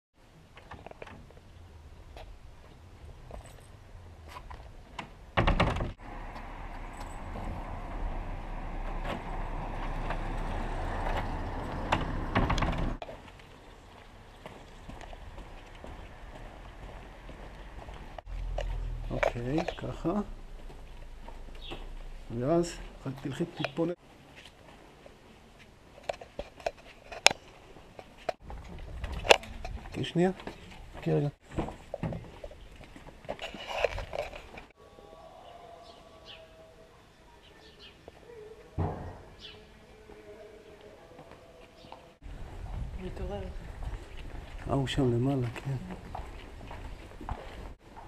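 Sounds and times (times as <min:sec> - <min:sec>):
motor vehicle rumble: 0:00.9 - 0:23.8
footsteps on paving: 0:13.0 - 0:19.9, 0:41.1 - 0:48.0.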